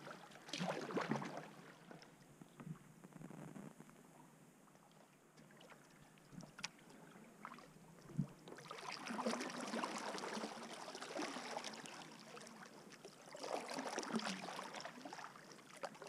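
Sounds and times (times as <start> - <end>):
paddle splashing in water: 0.0 - 2.1, 8.5 - 16.0.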